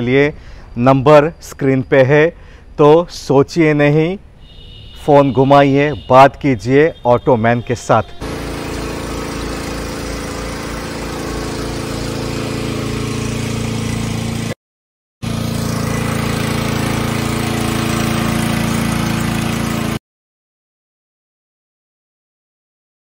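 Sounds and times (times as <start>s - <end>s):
diesel engine idling: 8.0s - 12.7s.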